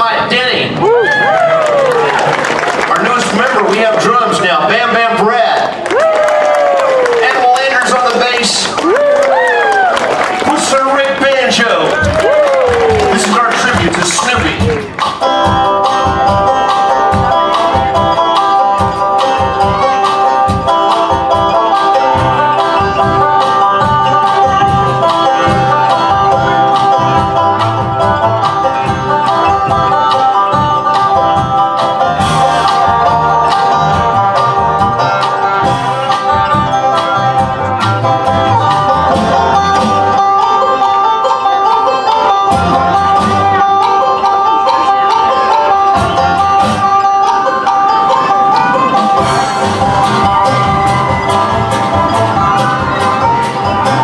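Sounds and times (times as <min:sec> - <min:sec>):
plucked upright bass: 0:11.9 - 0:54.0
banjo picking bluegrass tune: 0:13.2 - 0:54.0.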